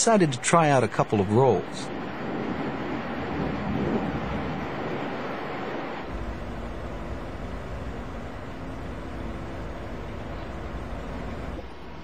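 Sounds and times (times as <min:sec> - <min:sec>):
jet rushing noise: 0:00.0 - 0:11.6
faint steady hum: 0:00.0 - 0:12.0
deep rumble: 0:01.9 - 0:11.7.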